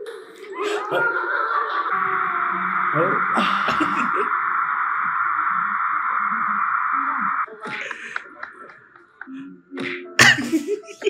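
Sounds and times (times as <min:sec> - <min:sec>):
quiet music: 0:07.5 - 0:11.0.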